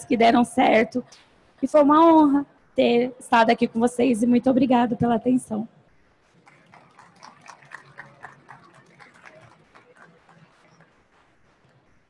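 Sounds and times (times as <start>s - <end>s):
faint applause: 6.4s - 12.0s.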